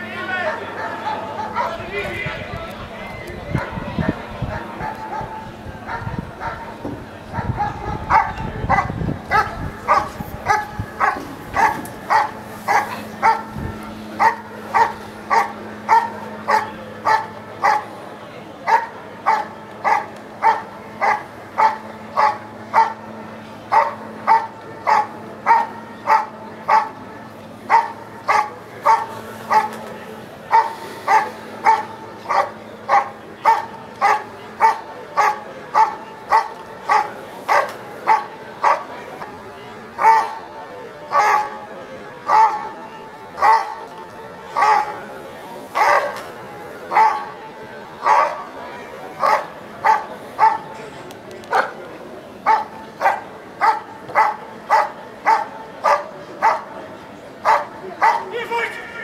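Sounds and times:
dog barking steadily: 3.5s - 17.9s, 18.6s - 29.8s, 30.4s - 38.9s, 40.0s - 40.5s, 41.1s - 41.6s, 42.2s - 42.8s, 43.4s - 43.9s, 44.5s - 45.0s, 45.7s - 46.2s, 46.9s - 47.4s, 48.0s - 48.5s, 49.2s - 50.8s, 51.5s - 51.8s, 52.4s - 56.8s, 57.4s - 58.3s.

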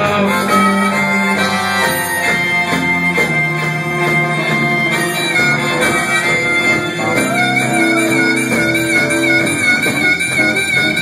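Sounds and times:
amplified blues harmonica: 0.0s - 11.0s
blues band playing: 0.0s - 11.0s.

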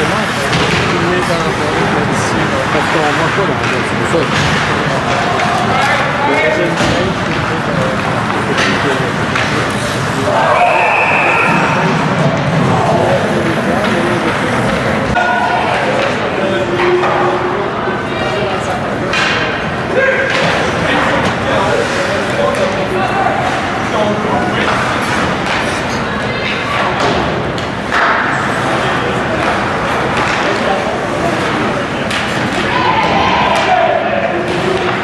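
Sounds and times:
voices of players and spectators: 0.0s - 35.0s.

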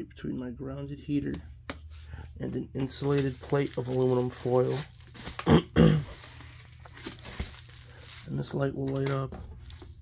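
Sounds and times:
plastic wrap crinkling: 2.9s - 8.6s.

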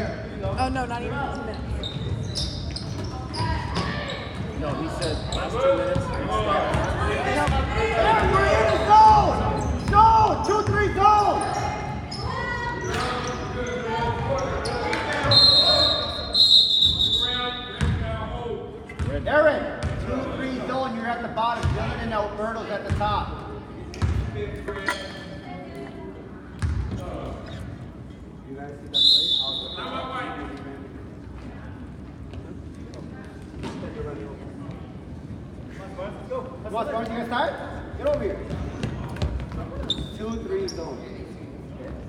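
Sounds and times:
voices echoing in gym: 0.0s - 42.0s
referee's whistle blasts: 15.2s - 17.8s, 28.9s - 30.0s.

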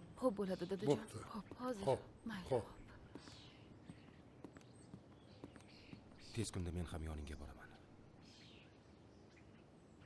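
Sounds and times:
man speaking: 0.8s - 1.2s.

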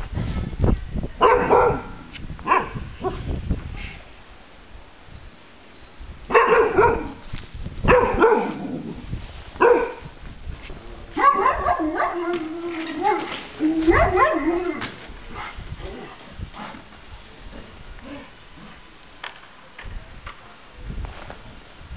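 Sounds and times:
dogs barking: 1.2s - 3.2s, 6.3s - 7.2s, 7.9s - 8.7s, 9.6s - 10.1s, 11.1s - 14.8s.

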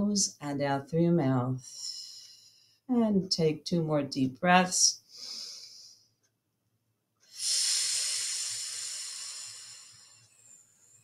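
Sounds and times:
woman breathing out: 7.3s - 11.0s.

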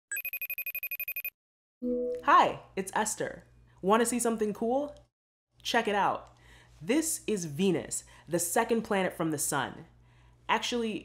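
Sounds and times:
electronic telephone ringtone trill: 0.1s - 1.3s.

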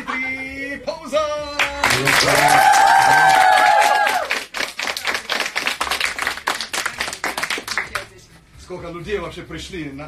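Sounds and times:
people applauding: 1.6s - 8.1s.

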